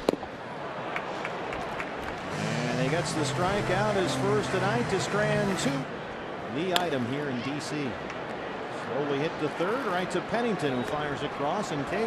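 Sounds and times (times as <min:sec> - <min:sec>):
crowd hum: 0:02.0 - 0:06.3.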